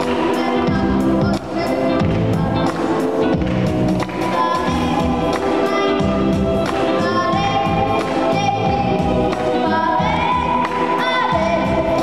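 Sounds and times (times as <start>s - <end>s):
boy singing into a microphone: 0.0s - 2.8s, 4.2s - 12.0s
amplified instrumental accompaniment: 0.0s - 12.0s.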